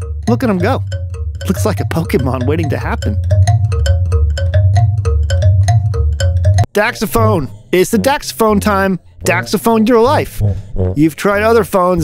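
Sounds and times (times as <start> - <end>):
plucked metal tongues on wooden box: 0.0 - 6.7.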